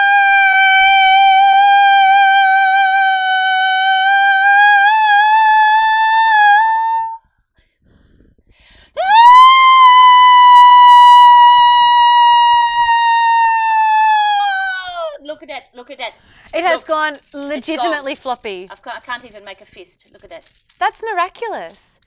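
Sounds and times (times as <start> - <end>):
woman singing high held notes: 0.0 - 7.2.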